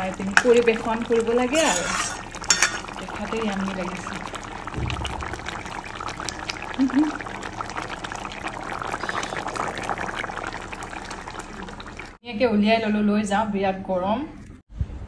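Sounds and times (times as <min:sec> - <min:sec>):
curry bubbling in a pan: 0:00.0 - 0:12.2
low thump: 0:04.7 - 0:05.6.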